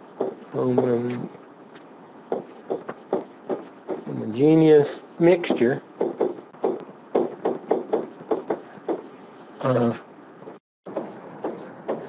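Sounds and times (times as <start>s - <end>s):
stylus tapping on whiteboard: 0.2s - 1.2s, 2.3s - 4.1s, 5.5s - 9.1s, 10.9s - 12.0s.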